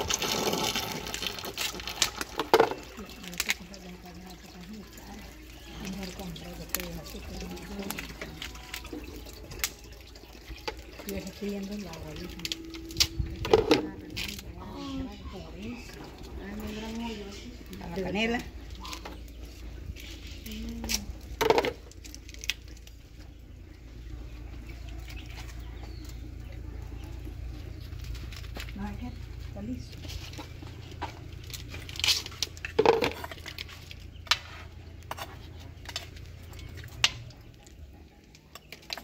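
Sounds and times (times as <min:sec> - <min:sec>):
low fire rumble: 0:00.0 - 0:39.0.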